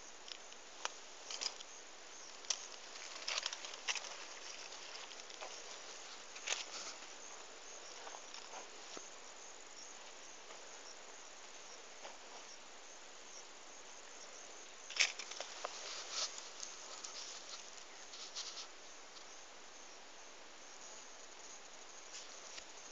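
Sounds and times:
dry plants rustling and crackling: 0.0 - 13.0, 14.0 - 19.4
steady soft hiss: 0.0 - 22.9.

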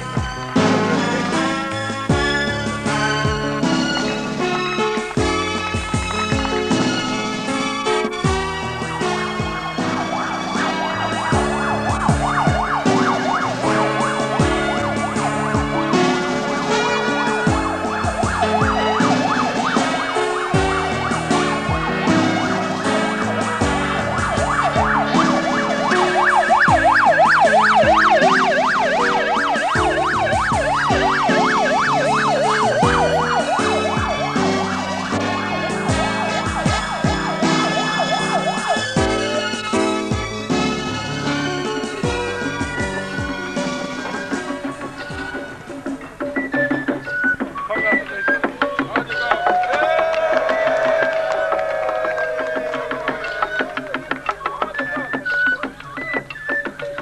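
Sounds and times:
background music with steady beat: 0.0 - 57.0
siren yelping: 9.1 - 40.9, 50.5 - 57.0.

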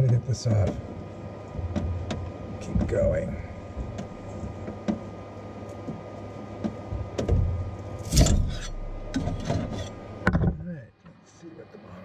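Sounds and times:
steady low hum: 0.0 - 12.0
metal spatula scraping plate: 8.0 - 10.0.

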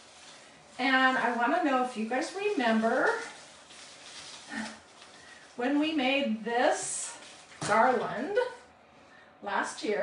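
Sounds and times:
paper garland rustling: 0.0 - 8.6.

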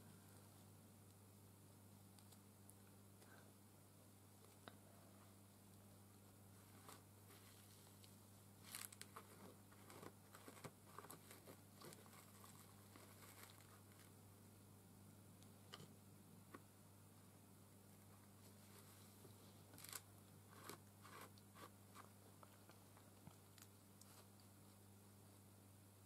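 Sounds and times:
steady low hum: 0.0 - 26.0
paper crinkling and clicking: 8.6 - 14.1, 19.7 - 21.4.

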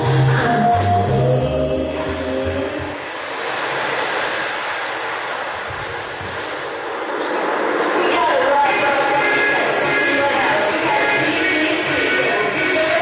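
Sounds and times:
steady rushing noise: 1.8 - 13.0.

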